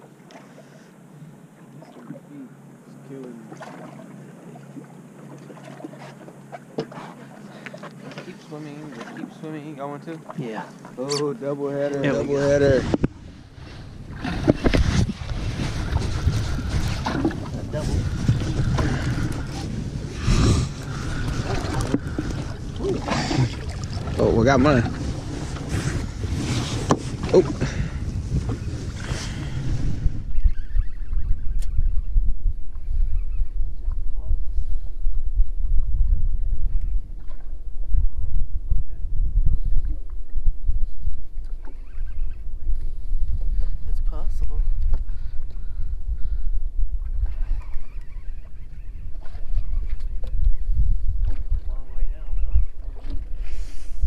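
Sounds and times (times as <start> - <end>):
wind and water rumble: 0.0 - 54.0.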